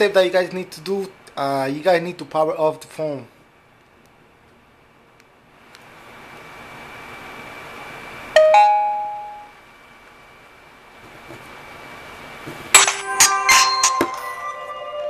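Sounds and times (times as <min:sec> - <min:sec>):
smartphone chime: 0:08.4 - 0:09.5
smartphone jingle of chiming notes: 0:08.4 - 0:09.5, 0:13.0 - 0:15.0.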